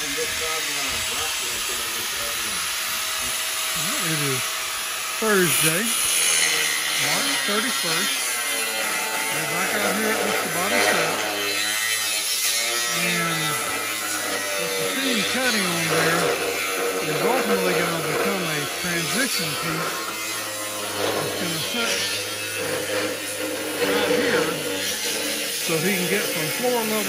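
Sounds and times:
power tool cutting metal: 0:00.0 - 0:27.0
person speaking indistinctly: 0:03.7 - 0:04.5, 0:05.1 - 0:06.1, 0:06.9 - 0:08.3, 0:09.2 - 0:11.3, 0:12.9 - 0:20.1, 0:21.0 - 0:22.3, 0:25.6 - 0:27.0.

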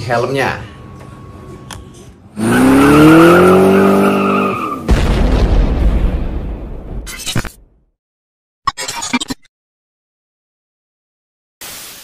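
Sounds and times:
deep rumbling boom: 0:04.9 - 0:07.0.

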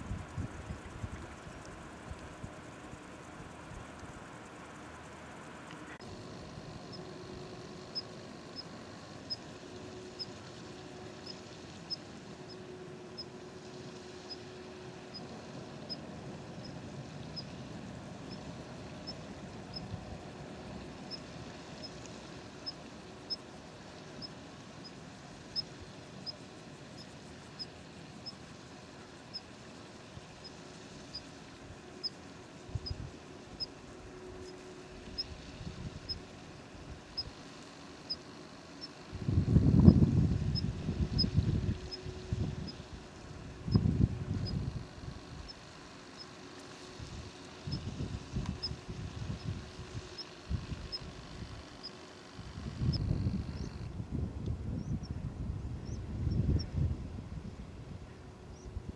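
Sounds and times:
outdoor background rush: 0:00.0 - 0:58.9.

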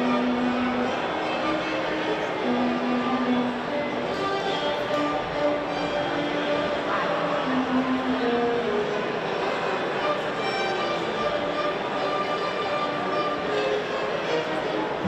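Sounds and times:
string ensemble playing: 0:00.0 - 0:15.0.

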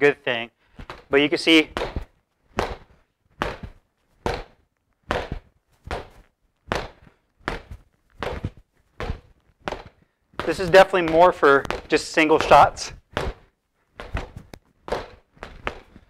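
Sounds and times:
boxing gloves thudding on reflex bag: 0:01.7 - 0:16.0.

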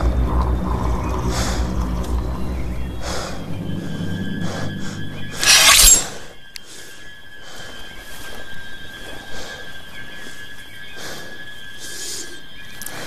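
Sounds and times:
quiet sustained music: 0:00.0 - 0:09.0.

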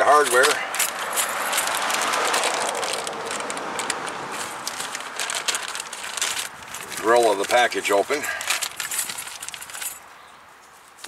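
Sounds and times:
plastic bag crinkling: 0:00.0 - 0:10.0
small metal parts clinking: 0:00.0 - 0:10.1.

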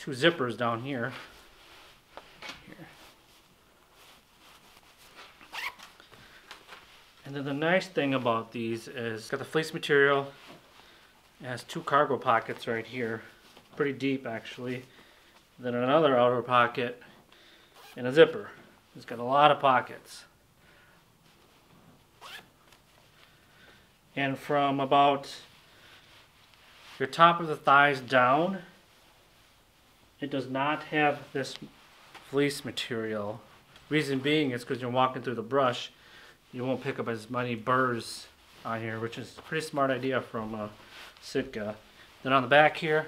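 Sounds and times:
fabric handling: 0:00.1 - 0:15.6, 0:36.5 - 0:43.0
zipper rasp: 0:05.4 - 0:05.9, 0:22.2 - 0:22.5.

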